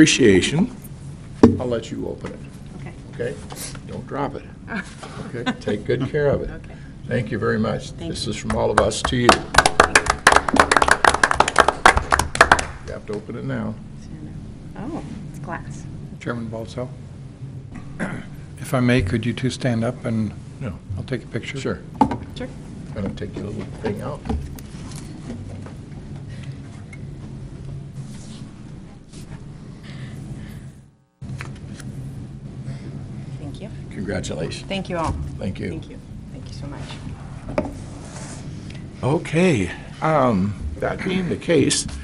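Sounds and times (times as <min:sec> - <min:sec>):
low electrical hum: 0:00.0 - 0:42.0
people applauding: 0:08.4 - 0:13.2.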